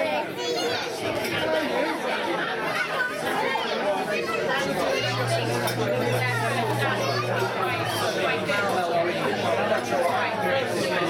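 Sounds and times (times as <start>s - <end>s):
chatter of overlapping voices: 0.0s - 11.0s
steady low hum: 4.7s - 8.8s.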